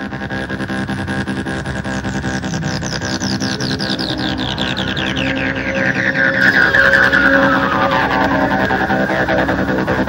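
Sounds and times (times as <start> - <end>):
shrill synth tone gliding down: 1.9 - 10.0.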